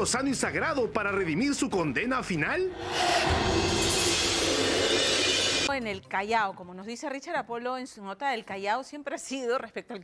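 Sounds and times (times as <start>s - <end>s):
deep hit: 2.8s - 5.7s.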